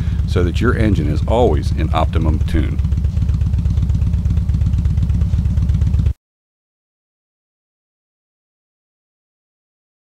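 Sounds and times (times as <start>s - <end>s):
motorcycle engine idling: 0.0s - 6.2s.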